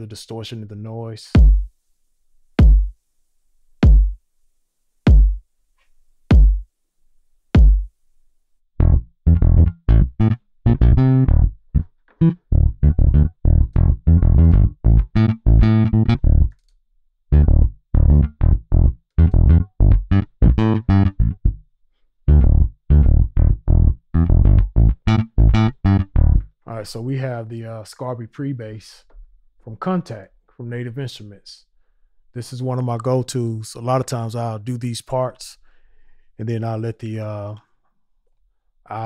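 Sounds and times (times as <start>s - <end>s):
electric bass riff: 8.8s - 16.6s, 17.3s - 21.6s, 22.3s - 26.6s.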